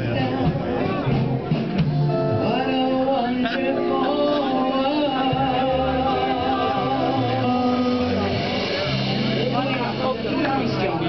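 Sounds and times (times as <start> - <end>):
audience voices: 0.0 - 11.0.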